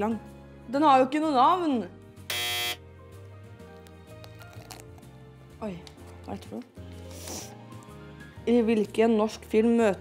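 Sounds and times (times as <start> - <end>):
quiet background music: 0.0 - 10.0
harsh game-show buzzer: 2.3 - 2.8.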